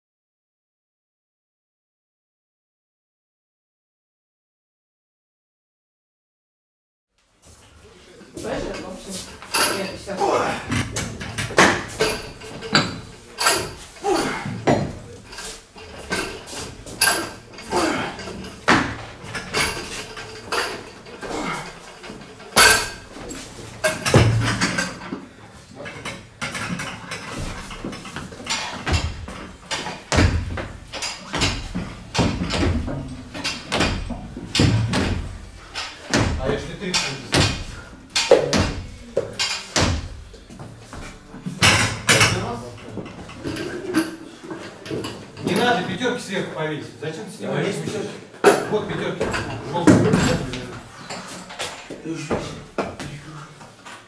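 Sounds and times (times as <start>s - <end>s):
weight plates clanking: 9.5s - 25.2s, 25.8s - 40.4s
barbells knocking: 15.8s - 25.2s, 26.4s - 40.4s
loaded bar thudding: 22.1s - 25.1s, 26.5s - 40.3s.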